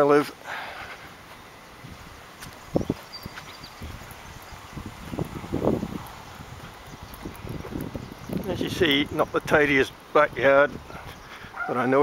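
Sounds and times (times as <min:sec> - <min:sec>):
footsteps on grass: 0:00.8 - 0:08.5.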